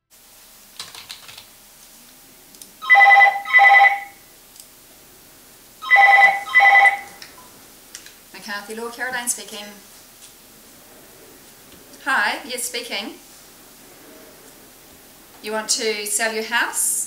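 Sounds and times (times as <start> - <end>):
telephone ringing: 2.8 - 4.2, 5.8 - 7.2.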